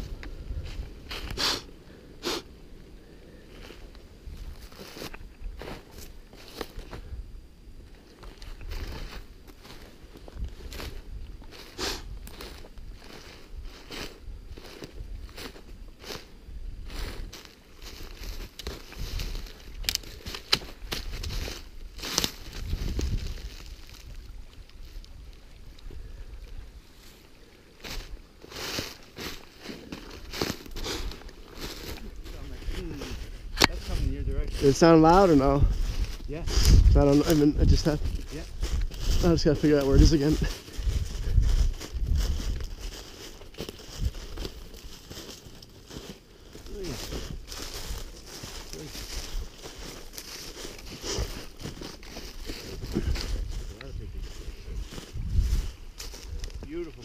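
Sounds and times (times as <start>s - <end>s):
footsteps crunching snow and leaves: 3.3s - 7.2s, 8.0s - 57.0s.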